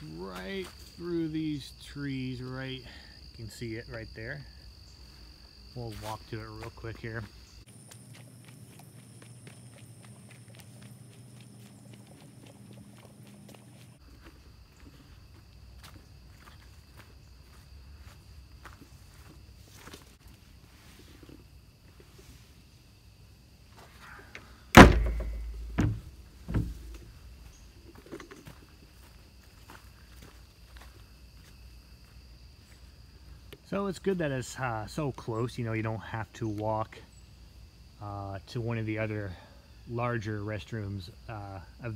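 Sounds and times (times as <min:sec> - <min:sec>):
crickets chirring: 0:00.0 - 0:41.9
footsteps on leaves: 0:05.8 - 0:21.2
thumps: 0:24.8 - 0:27.1.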